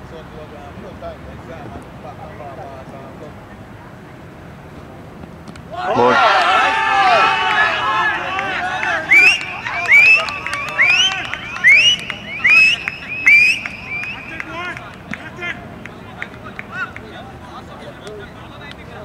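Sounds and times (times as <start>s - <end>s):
fielders shouting in celebration: 5.7s - 17.8s
short high-pitched calls: 9.1s - 14.4s.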